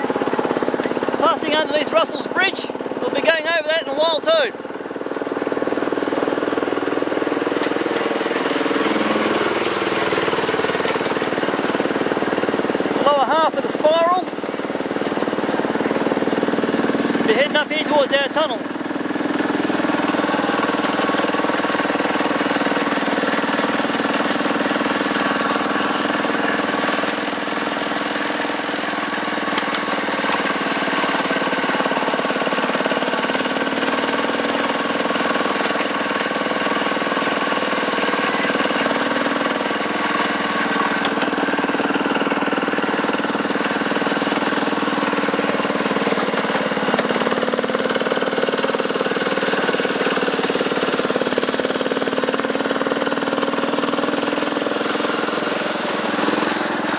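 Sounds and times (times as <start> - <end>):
miniature locomotive engine drone: 0.0 - 56.9.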